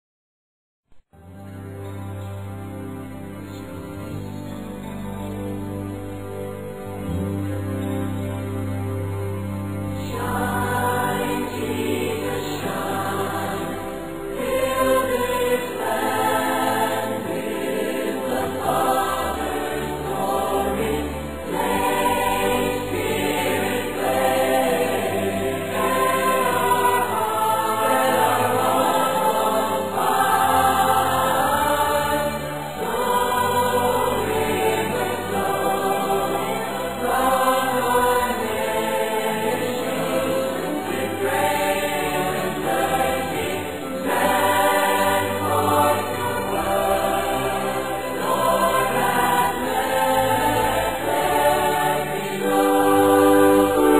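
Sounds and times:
choir singing long notes: 0:01.2 - 0:53.9.

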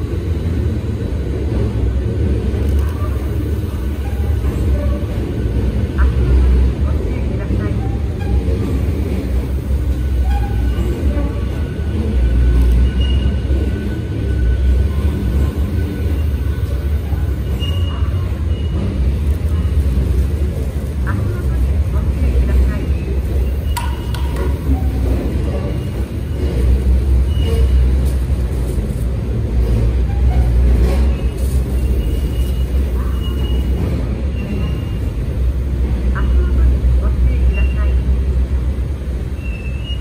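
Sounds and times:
train low rumble and hum: 0:00.0 - 0:40.0
faint voices: 0:00.8 - 0:29.3.

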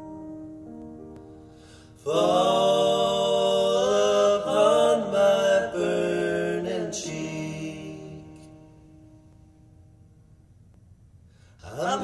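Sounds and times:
vocals singing in harmony: 0:01.9 - 0:09.1, 0:11.6 - 0:12.0.

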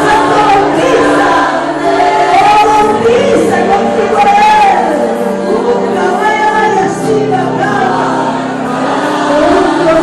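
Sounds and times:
women singing worship song: 0:00.0 - 0:10.0.

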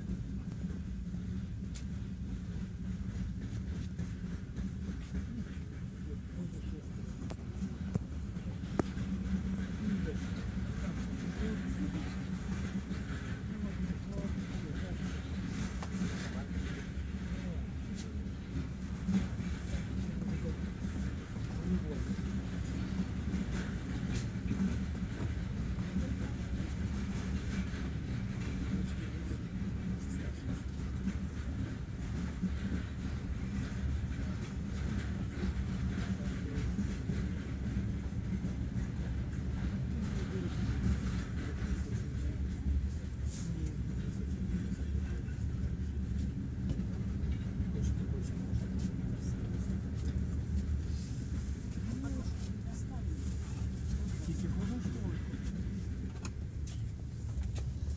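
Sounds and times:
diesel locomotive engine rumbling: 0:00.0 - 0:57.9.

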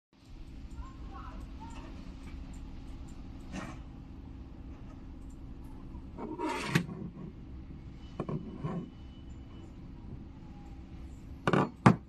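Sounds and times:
bolt scraping on wooden desk: 0:06.2 - 0:07.3.

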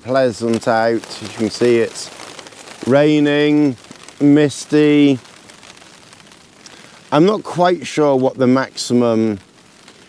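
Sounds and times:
light rain falling: 0:00.0 - 0:10.0.

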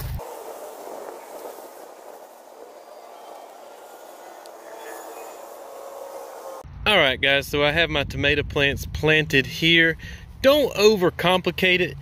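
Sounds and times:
steady background hiss: 0:00.2 - 0:06.6.

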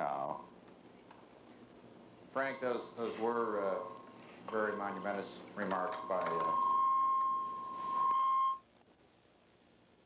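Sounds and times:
steady electronic beep tone: 0:05.9 - 0:08.6.

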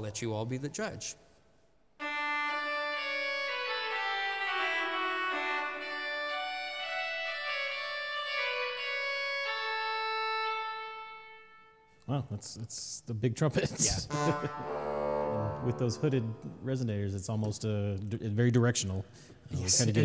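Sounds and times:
pipe organ reed chords: 0:02.0 - 0:11.9, 0:14.0 - 0:16.8.

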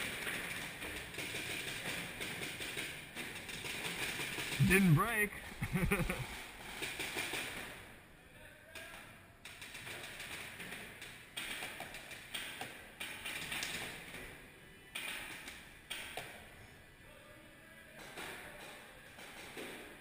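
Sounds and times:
paintball markers firing: 0:08.8 - 0:14.2.

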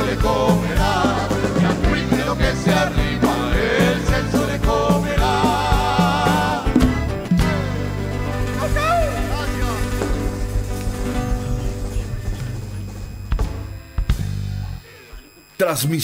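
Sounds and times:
man singing with vibrato: 0:00.0 - 0:06.9
accordion: 0:00.0 - 0:14.2
drum strikes: 0:00.0 - 0:14.7
congas: 0:00.0 - 0:14.8.

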